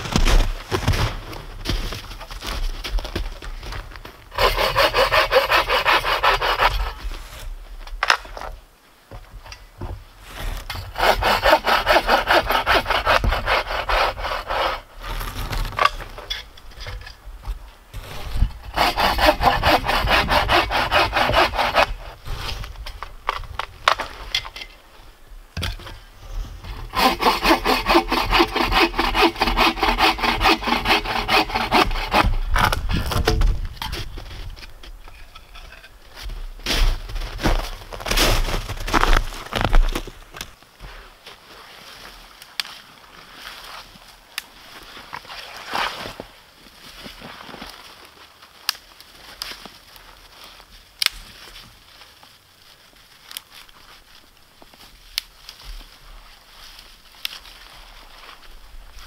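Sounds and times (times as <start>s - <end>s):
bow saw cutting branch: 4.4s - 7.4s, 10.7s - 16.1s, 18.0s - 22.6s, 26.7s - 33.4s.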